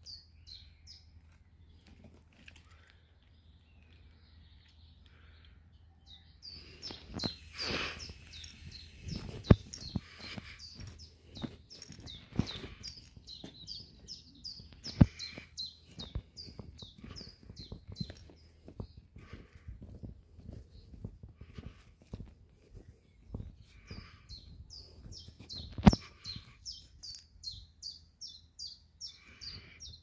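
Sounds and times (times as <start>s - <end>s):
small birds chirping: 0.0s - 30.0s.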